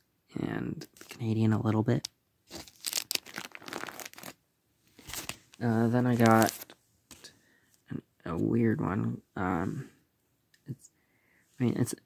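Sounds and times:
plastic case crinkling: 0.8 - 1.2, 2.5 - 4.4, 5.0 - 6.8.

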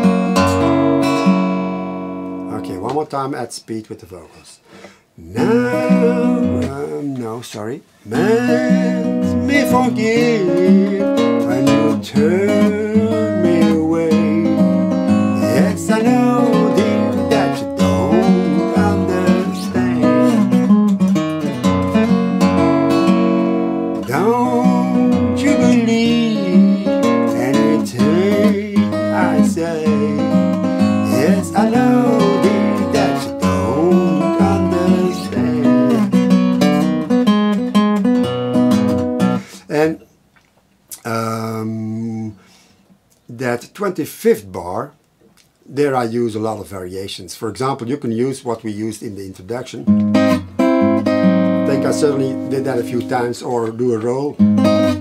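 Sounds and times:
guitar chord ringing: 0.0 - 2.9, 8.2 - 39.4, 49.9 - 53.3, 54.4 - 55.0
acoustic guitar fingerpicking blues: 0.0 - 3.1, 4.8 - 40.0, 40.9 - 42.5, 49.8 - 55.0.

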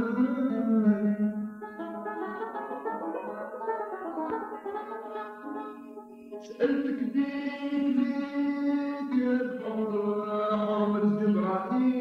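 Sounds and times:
man singing slow melody: 0.0 - 1.5, 6.4 - 12.0.

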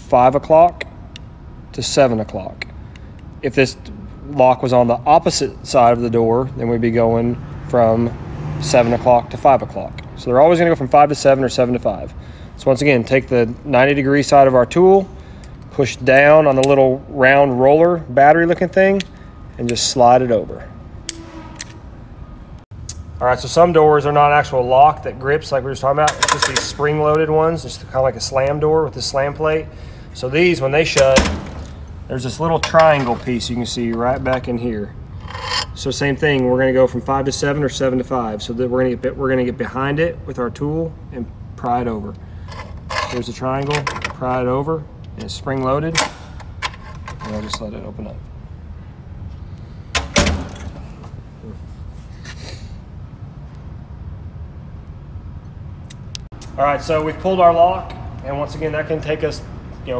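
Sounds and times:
door rattle: 31.0 - 31.8, 50.0 - 51.0.

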